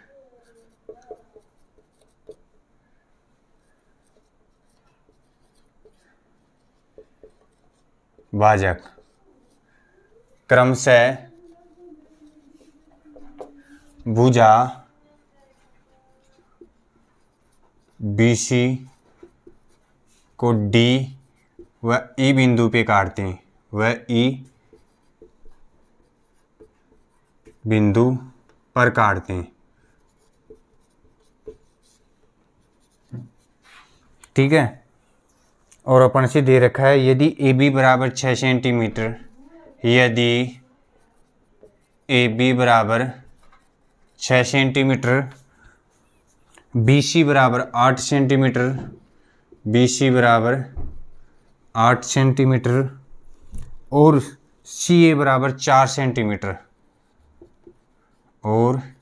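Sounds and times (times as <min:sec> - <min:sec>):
marker scratching on whiteboard: 0:00.0 - 0:59.0.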